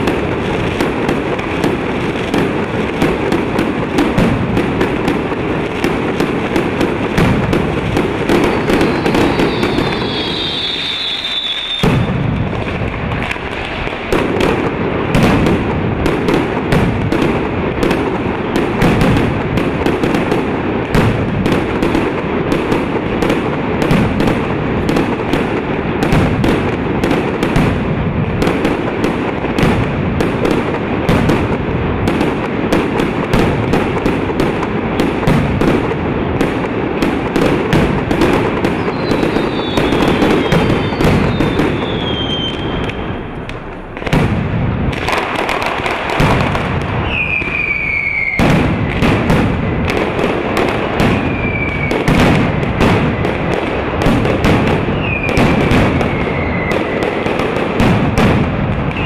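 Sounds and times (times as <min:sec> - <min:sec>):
firecrackers banging: 0:00.0 - 0:59.0
falling whistles: 0:08.5 - 0:12.1, 0:38.9 - 0:42.9, 0:47.0 - 0:48.4, 0:51.3 - 0:52.0, 0:55.0 - 0:57.0.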